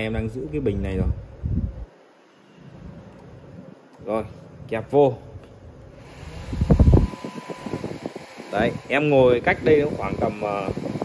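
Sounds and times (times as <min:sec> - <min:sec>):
fan whine: 0:00.0 - 0:11.0
fan wind noise on microphone: 0:00.0 - 0:11.0.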